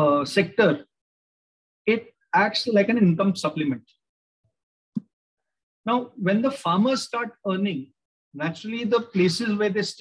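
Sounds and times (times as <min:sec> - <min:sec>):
man speaking: 0:00.0 - 0:00.9, 0:01.9 - 0:03.9, 0:05.9 - 0:10.0.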